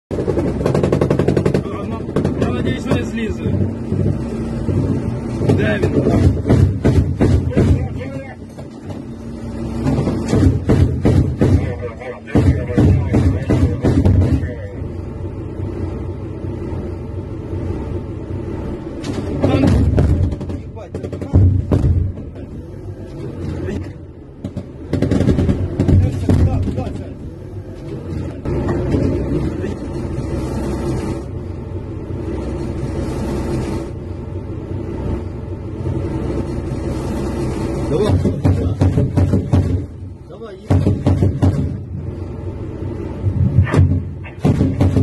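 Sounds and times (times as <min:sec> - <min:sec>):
bursts of sharp knocks: 0:00.1 - 0:09.2, 0:09.8 - 0:14.6, 0:19.0 - 0:22.6, 0:24.4 - 0:27.2, 0:37.9 - 0:41.9, 0:43.4 - 0:45.0
engine drone: 0:00.1 - 0:45.0
vehicle interior rumble and hum: 0:00.1 - 0:45.0
machine gun firing: 0:24.9 - 0:26.1.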